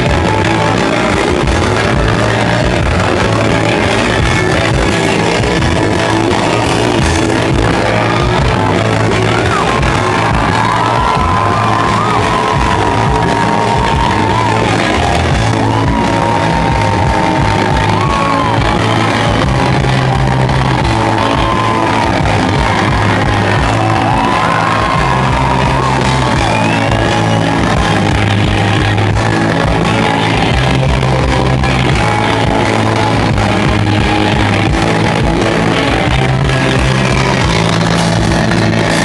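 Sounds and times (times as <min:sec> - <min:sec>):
crowd whooping and yelling: 0:00.0 - 0:39.0
live rock band playing: 0:00.0 - 0:39.0.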